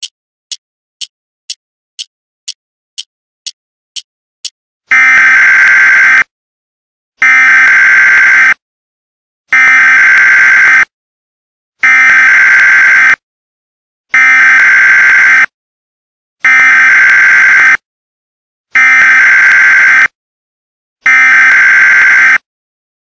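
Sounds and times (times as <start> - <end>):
electronic alarm clock buzzer: 3.0 - 6.3, 7.2 - 8.6, 9.5 - 10.9, 11.8 - 13.2, 14.1 - 15.6, 16.4 - 17.8, 18.8 - 20.2, 21.0 - 22.5.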